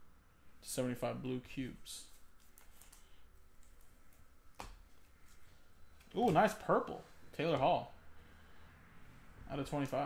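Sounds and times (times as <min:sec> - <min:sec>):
trading cards flipped by hand: 0:02.1 - 0:05.4.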